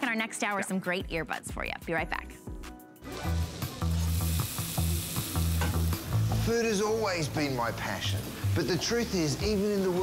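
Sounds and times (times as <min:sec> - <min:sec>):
food sizzling in a hot pan: 0:03.0 - 0:10.0.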